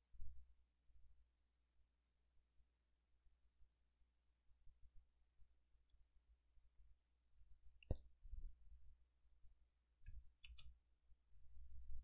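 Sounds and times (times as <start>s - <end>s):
computer mouse clicks: 10.0s - 10.8s.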